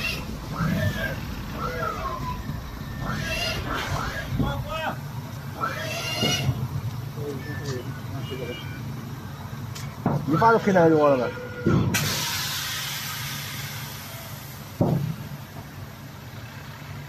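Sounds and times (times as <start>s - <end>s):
indistinct voices talking: 0.0s - 12.0s
low mechanical hum: 0.0s - 17.0s.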